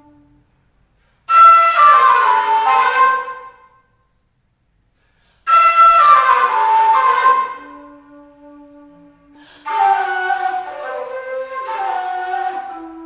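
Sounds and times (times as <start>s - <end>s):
breathy flute phrases: 5.2s - 13.0s.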